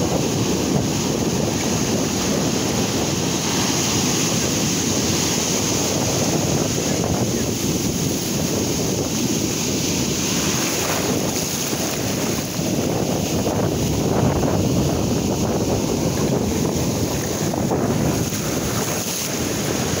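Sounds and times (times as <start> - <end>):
ocean surf breaking: 0.0 - 20.0
wind buffeting microphone: 0.0 - 20.0.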